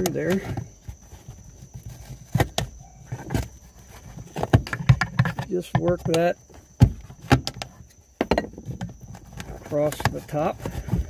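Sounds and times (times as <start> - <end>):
plastic clicks and knocks: 4.3 - 11.0.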